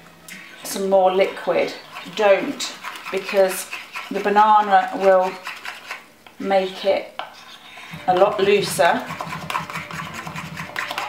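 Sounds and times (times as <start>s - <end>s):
metal spoon stirring batter in bowl: 0.3s - 11.0s.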